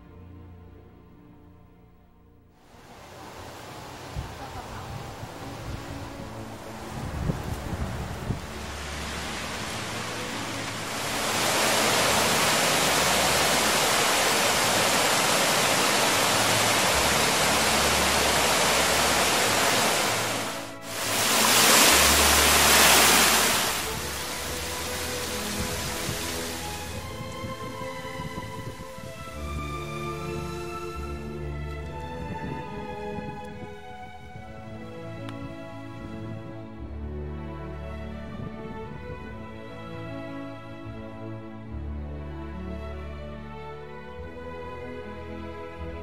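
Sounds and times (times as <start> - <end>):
soft background music: 0.0 - 46.0
waterfall rushing: 2.7 - 30.7.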